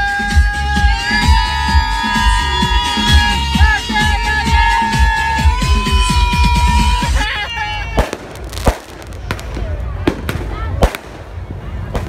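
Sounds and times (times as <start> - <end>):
loud party music: 0.0 - 8.8
people's voices: 0.0 - 12.0
fireworks banging: 7.8 - 12.0.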